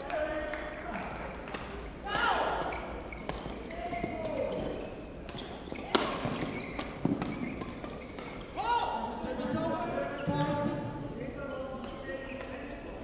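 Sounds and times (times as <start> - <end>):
shoes squeaking on court floor: 0.1 - 13.0
racket striking shuttlecock: 0.9 - 3.7, 4.3 - 8.6.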